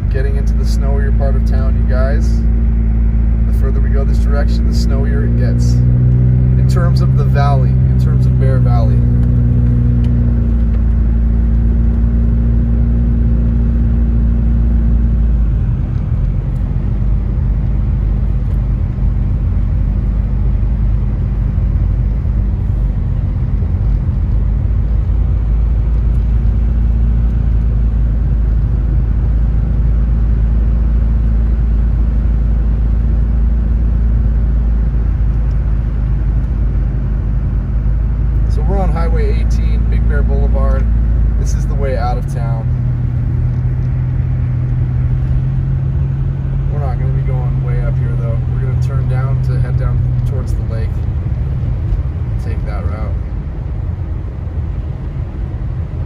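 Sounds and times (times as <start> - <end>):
car engine running: 0.0 - 56.0.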